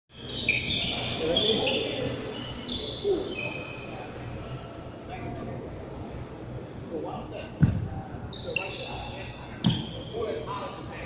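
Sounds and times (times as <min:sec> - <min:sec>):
shoe soles squeaking on wooden court: 0:00.1 - 0:04.4, 0:05.8 - 0:06.6, 0:07.6 - 0:10.2.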